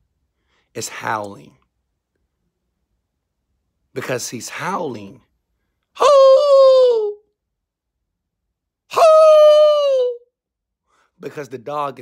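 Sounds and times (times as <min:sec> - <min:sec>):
man imitating dog howl: 0:06.0 - 0:07.3, 0:08.9 - 0:10.3.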